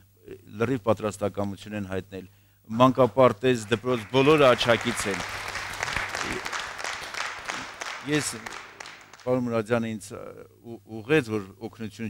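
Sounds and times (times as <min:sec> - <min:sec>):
audience applauding: 0:03.6 - 0:09.4.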